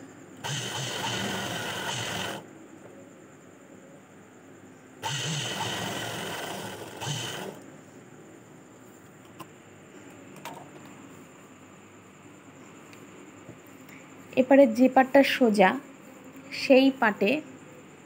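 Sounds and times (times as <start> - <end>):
sewing machine stitching: 0.4 - 2.4, 5.0 - 7.6.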